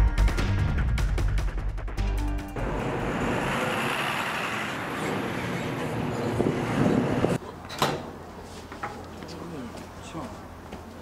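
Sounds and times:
background music: 0:00.0 - 0:02.7
road traffic noise: 0:02.3 - 0:11.0.

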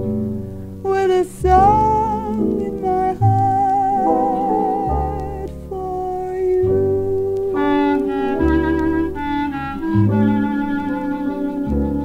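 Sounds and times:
instrumental jazz ensemble: 0:01.7 - 0:12.0.

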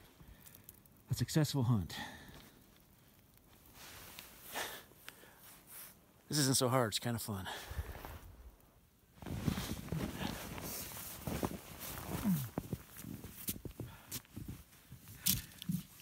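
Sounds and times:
footsteps crunching in snow: 0:07.7 - 0:08.4, 0:09.2 - 0:16.0
short low grunt: 0:12.1 - 0:12.6.

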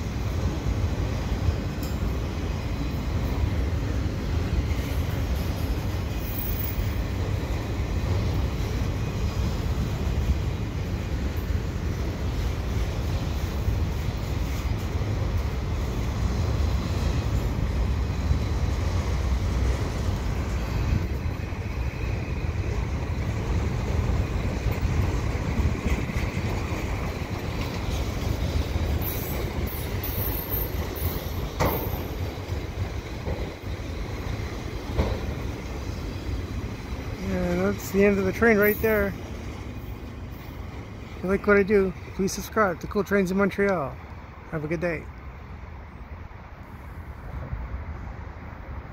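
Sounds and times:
train wheels rumbling on rail: 0:00.0 - 0:48.9.

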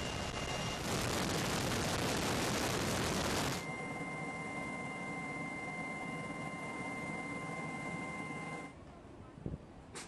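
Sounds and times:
high-pitched engine whine: 0:00.0 - 0:08.7.

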